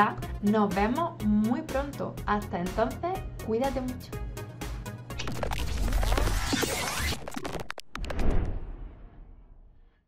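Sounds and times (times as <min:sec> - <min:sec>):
electronic music: 0:05.1 - 0:08.1
glitchy scratching sound effect: 0:05.2 - 0:08.2.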